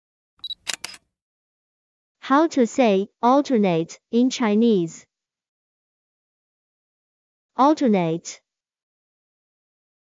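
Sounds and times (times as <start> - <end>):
shutter-like clicks: 0.4 - 1.0.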